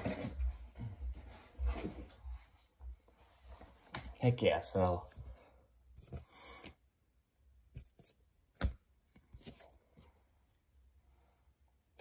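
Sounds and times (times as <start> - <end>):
trading cards sliding and scraping: 6.0 - 6.8, 7.8 - 9.8.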